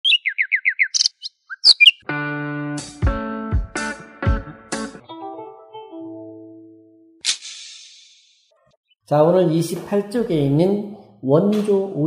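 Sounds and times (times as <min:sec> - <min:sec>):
bird chirping: 0:00.0 - 0:02.0.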